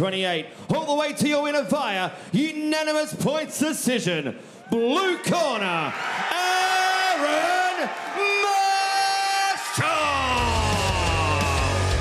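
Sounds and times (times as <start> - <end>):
announcer bellowing into microphone: 4.7 - 11.9
crowd cheering: 4.7 - 12.0.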